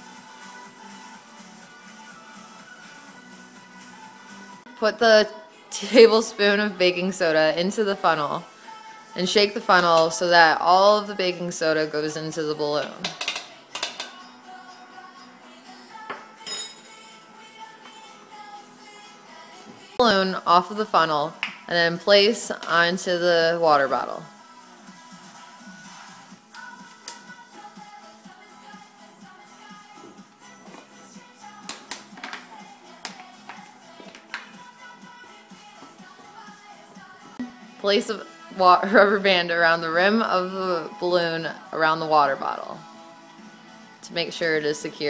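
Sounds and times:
faint music: 0:00.0 - 0:45.0
metal spoon tapping plastic funnel: 0:13.0 - 0:14.2
spoon clinking on table: 0:16.5 - 0:17.0.

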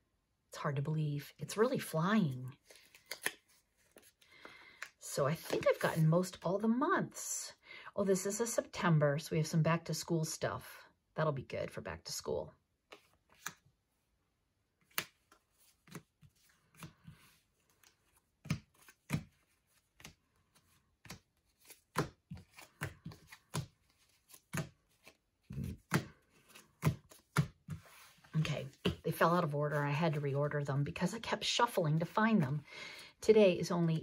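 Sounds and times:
paper envelopes shuffled by hand: 0:15.1 - 0:30.6.

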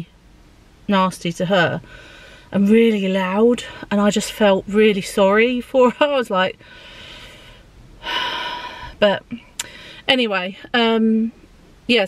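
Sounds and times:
woman breathing: 0:01.8 - 0:02.6, 0:06.6 - 0:10.1
breathy vocal sound: 0:06.6 - 0:09.0.

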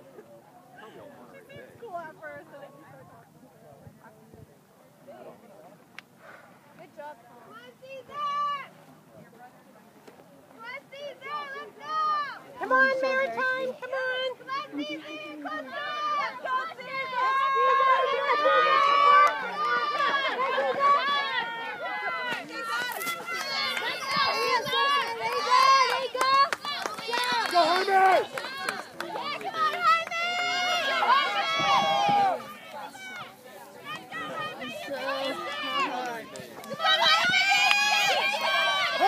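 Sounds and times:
spectators shouting and cheering: 0:10.7 - 0:39.0.

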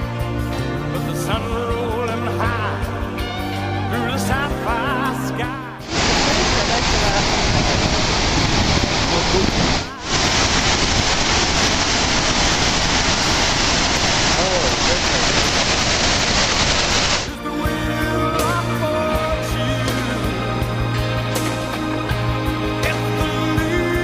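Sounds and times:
music: 0:00.0 - 0:08.7, 0:09.3 - 0:10.8, 0:16.9 - 0:24.0
waterfall roaring: 0:05.8 - 0:17.3.

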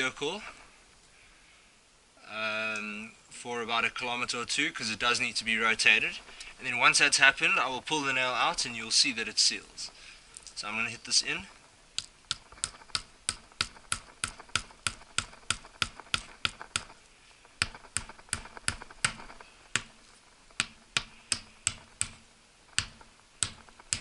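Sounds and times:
hammer tapping nail into tyre: 0:12.3 - 0:16.9, 0:17.6 - 0:20.0, 0:20.6 - 0:22.2, 0:22.8 - 0:24.0.

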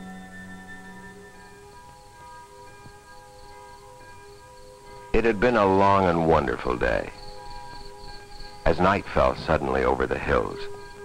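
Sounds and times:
soft held chords: 0:00.0 - 0:11.0.

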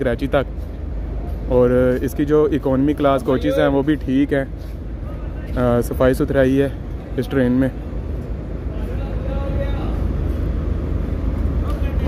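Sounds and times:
low rumble of standing train: 0:00.0 - 0:12.0.

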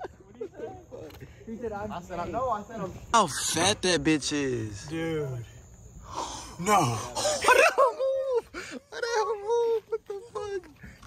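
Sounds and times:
men exclaiming and talking: 0:00.0 - 0:11.0.

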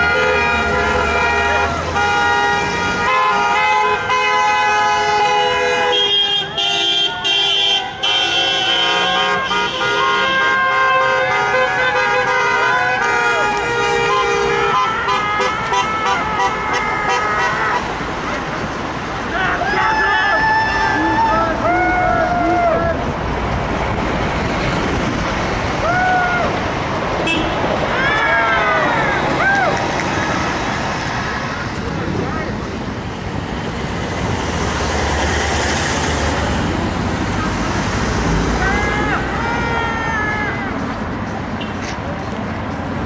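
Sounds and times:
heavy vehicle passing: 0:00.0 - 0:43.0
road traffic passing: 0:00.0 - 0:43.0
people calling and shouting: 0:05.2 - 0:43.0.

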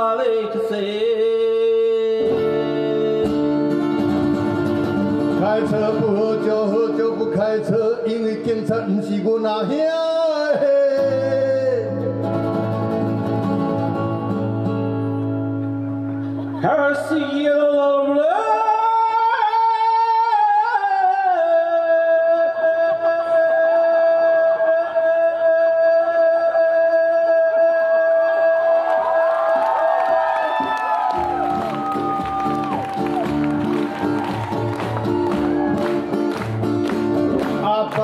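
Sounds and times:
acoustic guitars: 0:00.0 - 0:20.7, 0:31.1 - 0:38.0.

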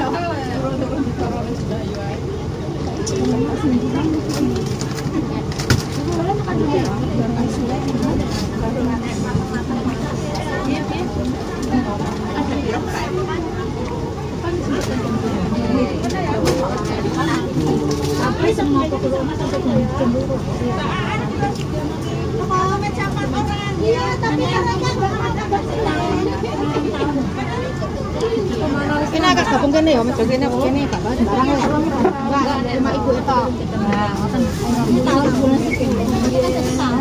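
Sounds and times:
people talking: 0:00.0 - 0:37.0.

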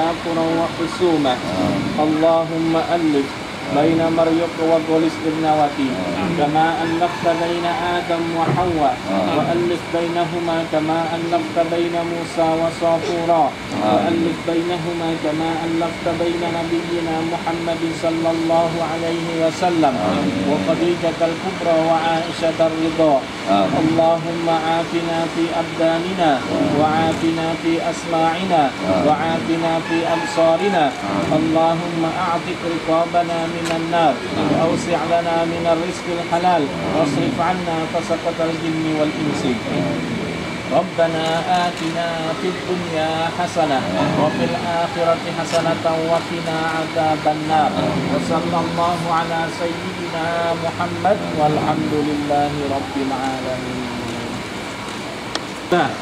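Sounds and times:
man chanting a prayer: 0:00.0 - 0:54.5
steady background hum: 0:00.0 - 0:56.0.

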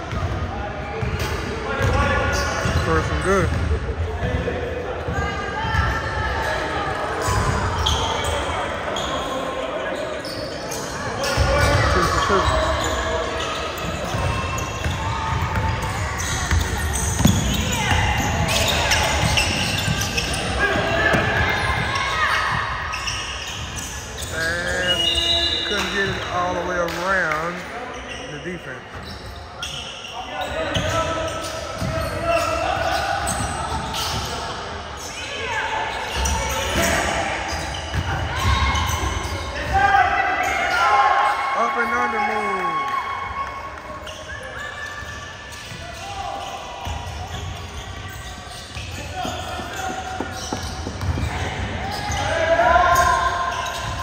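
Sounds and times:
players calling out: 0:01.8 - 0:54.0
basketball bouncing on hardwood: 0:16.5 - 0:18.0, 0:50.2 - 0:51.3.

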